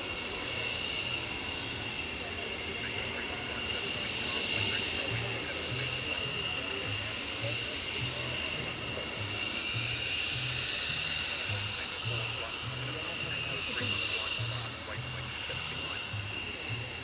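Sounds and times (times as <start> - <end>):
jet engines idling whine: 0.0 - 17.0.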